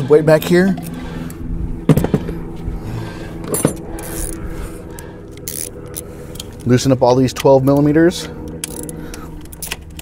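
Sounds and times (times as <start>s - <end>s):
pliers clicking and scraping on hose: 3.5s - 10.0s.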